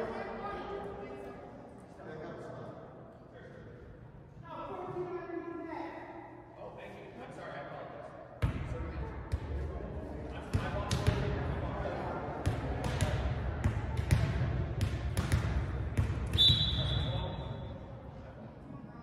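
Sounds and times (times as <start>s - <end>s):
voices of players and spectators: 0.0s - 19.0s
volleyball hits and bounces: 12.4s - 16.6s
referee's whistle: 16.3s - 17.7s.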